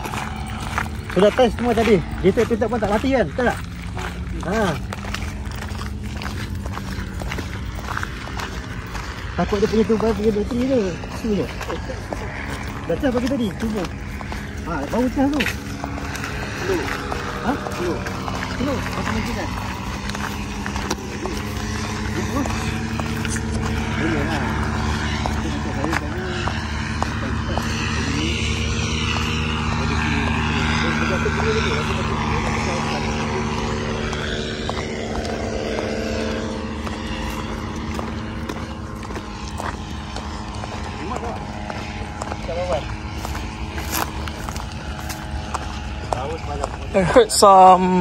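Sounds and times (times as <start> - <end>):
faint voices: 0.0 - 48.0
footsteps on gravel: 0.0 - 48.0
propeller engine droning: 0.0 - 48.0
steady low hum: 0.0 - 48.0.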